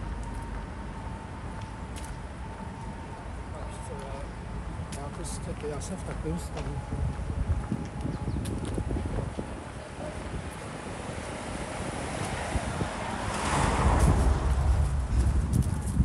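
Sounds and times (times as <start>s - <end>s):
wind rumbling on microphone: 6.1s - 16.0s
footsteps through dry leaves: 13.4s - 16.0s.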